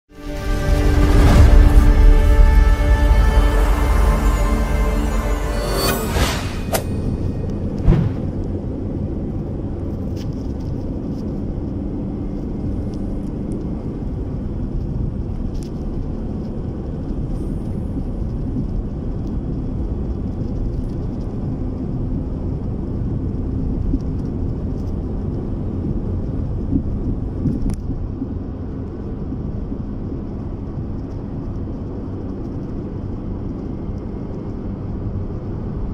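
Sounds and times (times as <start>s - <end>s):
road noise: 0.1s - 22.4s
vehicle engine rumble: 1.0s - 35.9s.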